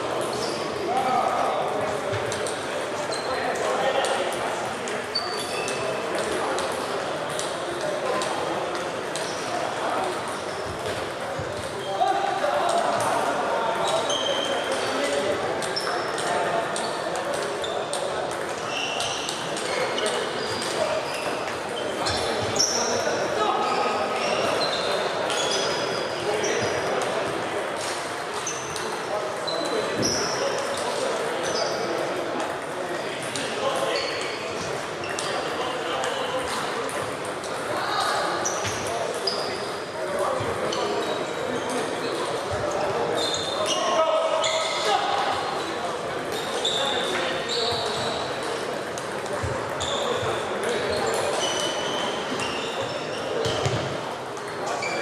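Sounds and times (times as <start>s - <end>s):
murmur of voices: 0.0s - 55.0s.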